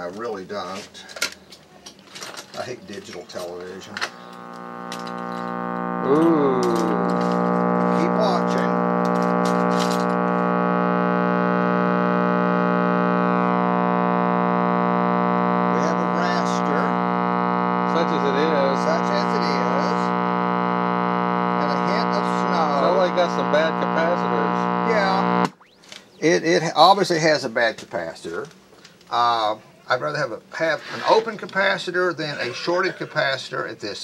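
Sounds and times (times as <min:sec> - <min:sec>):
television humming loudly: 0:03.6 - 0:25.8.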